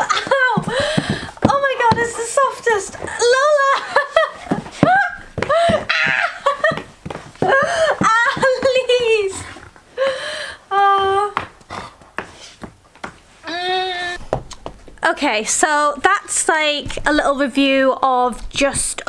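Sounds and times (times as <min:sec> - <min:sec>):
woman laughing and exclaiming: 0:00.0 - 0:09.4.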